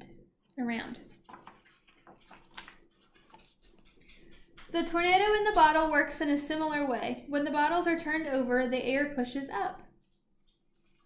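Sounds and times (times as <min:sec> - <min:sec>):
book page turning: 0:01.1 - 0:04.5.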